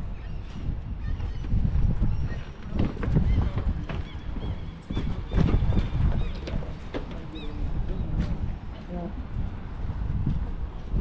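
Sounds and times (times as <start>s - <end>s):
wind buffeting microphone: 0.0s - 11.0s
footsteps on pavement: 0.4s - 11.0s.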